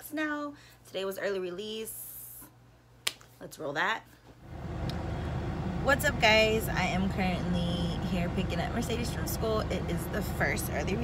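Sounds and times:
car cabin and engine rumble: 4.4 - 11.0.

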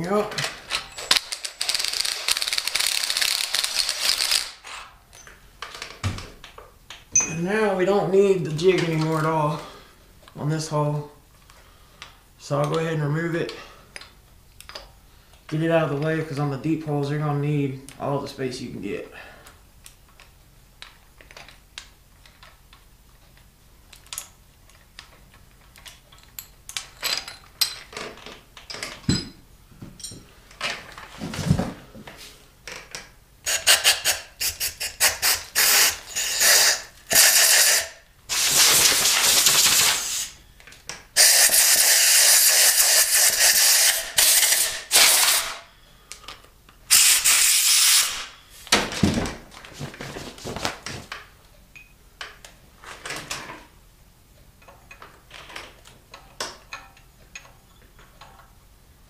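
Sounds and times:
air blow gun hissing: 33.5 - 40.4, 41.2 - 45.6, 46.9 - 48.3.

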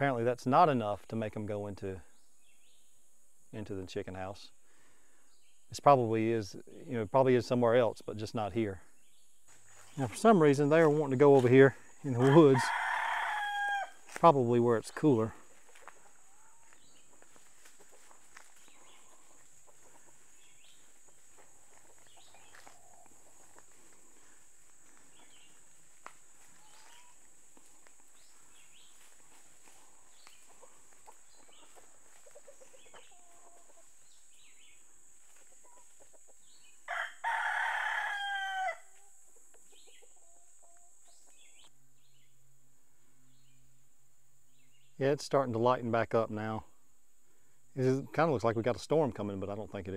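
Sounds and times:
hens clucking: 10.0 - 36.8
rooster crowing: 12.0 - 14.1, 36.8 - 39.0.

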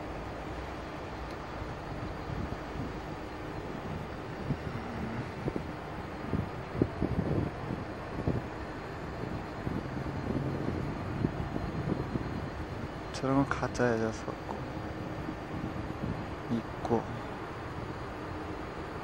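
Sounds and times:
low rumbling wind noise: 0.0 - 19.0.

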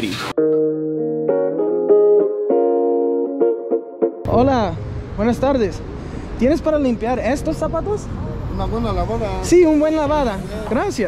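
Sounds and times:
plucked guitar notes: 0.4 - 5.4.

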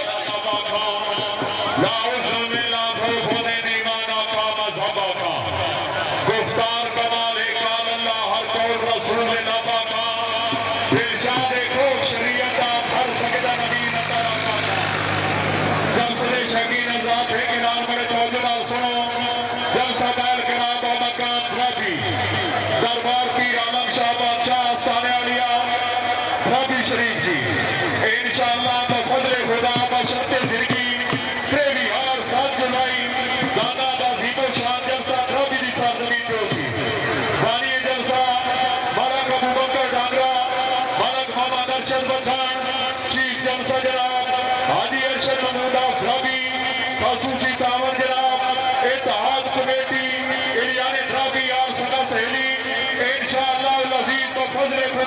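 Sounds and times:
man speaking over loudspeakers: 0.0 - 55.0.

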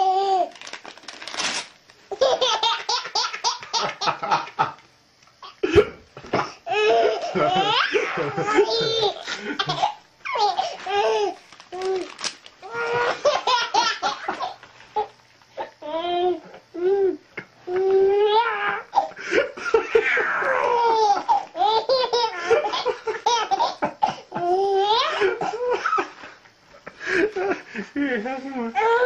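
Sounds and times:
paper tearing: 0.5 - 1.8, 11.4 - 12.5
baby laughing: 2.1 - 4.7, 6.7 - 11.4, 12.7 - 15.1, 19.7 - 25.8.

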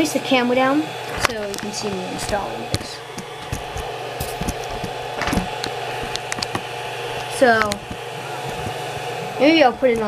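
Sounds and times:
cooling fans whirring: 0.0 - 10.0
camera handling clicks and knocks: 3.2 - 6.7.

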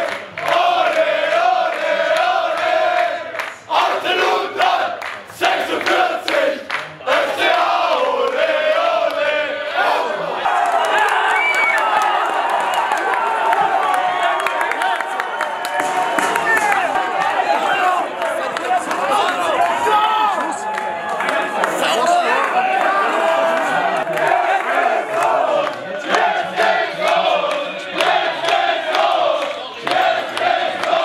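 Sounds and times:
clapping: 0.0 - 3.6, 4.6 - 7.6, 10.6 - 31.0
crowd chanting: 0.0 - 31.0
crowd cheering and shouting: 7.3 - 31.0.

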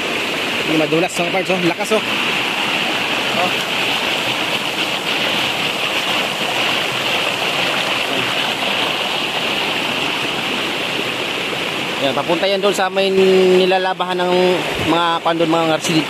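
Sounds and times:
creek rushing over rocks: 0.0 - 16.0.

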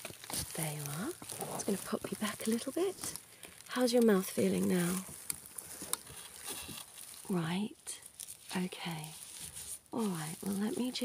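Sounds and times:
steady faint hiss: 0.0 - 11.0.

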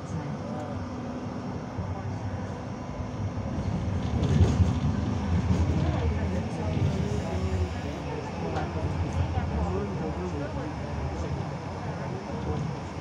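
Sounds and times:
tram wheels rumbling on rails: 1.8 - 13.0.

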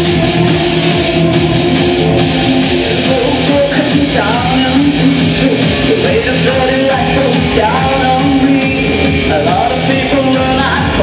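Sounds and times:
electric guitar: 0.0 - 11.0
live industrial rock music: 0.0 - 11.0.

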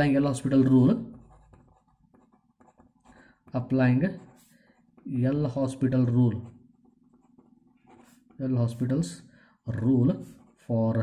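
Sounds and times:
pen scratching on paper: 0.0 - 9.2, 9.8 - 11.0.

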